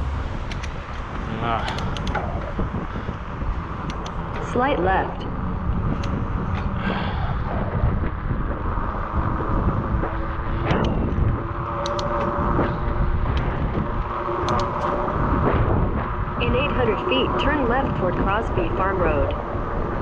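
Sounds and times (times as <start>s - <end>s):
car traffic passing: 0.0s - 20.0s
wind rumbling on microphone: 0.0s - 20.0s
light clicks: 0.5s - 2.3s, 3.8s - 4.5s, 11.8s - 12.3s.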